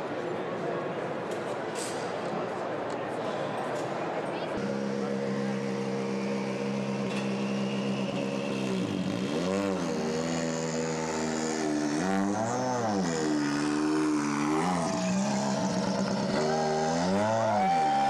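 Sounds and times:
car engine idling and revving: 0:04.6 - 0:18.0.

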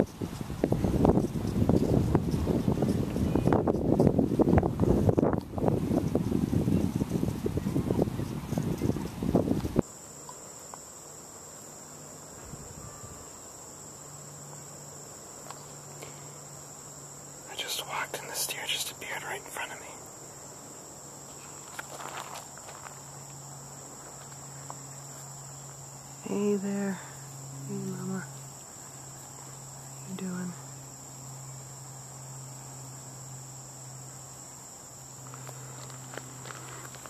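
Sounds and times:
wind buffeting microphone: 0:00.0 - 0:09.8
insects chirping: 0:00.0 - 0:37.0.

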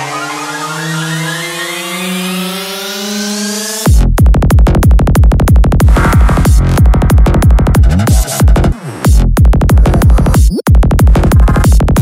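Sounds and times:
synthesizer tone rising in pitch: 0:00.0 - 0:03.9, 0:05.8 - 0:09.2.

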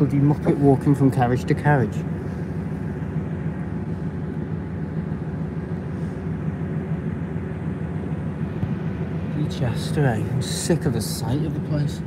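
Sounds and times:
train carriage rumble: 0:00.0 - 0:12.0.

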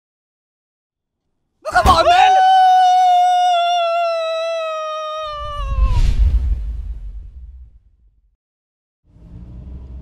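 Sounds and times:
person screaming high-pitched: 0:01.7 - 0:06.1
deep rumble: 0:05.4 - 0:08.3.

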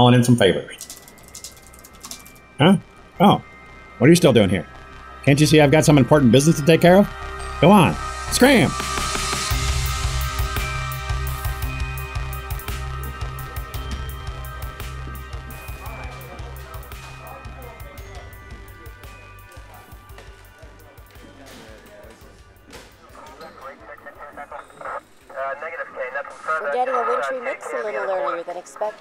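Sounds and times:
music with deep bass: 0:00.8 - 0:25.0
person speaking: 0:05.3 - 0:08.7.

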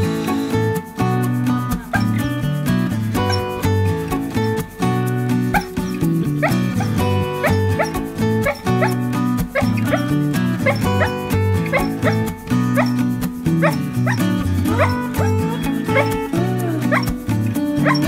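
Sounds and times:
background music: 0:00.0 - 0:18.0
dog whimpering and yipping: 0:01.8 - 0:02.2, 0:03.2 - 0:03.7, 0:05.3 - 0:09.0, 0:09.6 - 0:16.3, 0:16.9 - 0:17.2, 0:17.8 - 0:18.0.

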